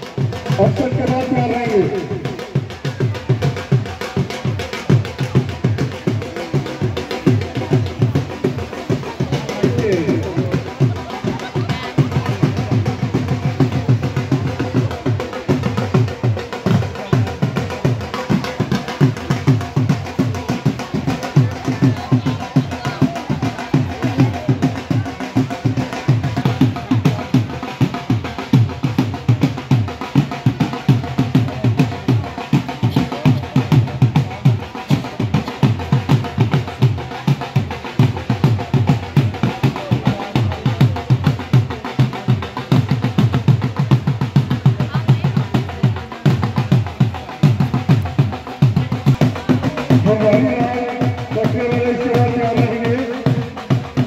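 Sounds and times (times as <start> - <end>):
barrel drum beating: 0.0 - 54.0
crowd voices: 0.0 - 54.0.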